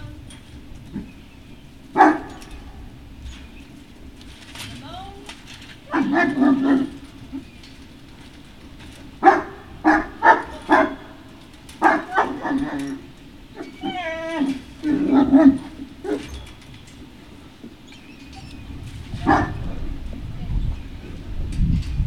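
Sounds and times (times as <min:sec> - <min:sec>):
dog barking: 0:02.0 - 0:02.8, 0:05.9 - 0:07.0, 0:09.2 - 0:16.4, 0:19.1 - 0:19.9
dog yelping: 0:02.0 - 0:02.9, 0:05.9 - 0:07.5, 0:09.2 - 0:16.6, 0:17.9 - 0:20.0.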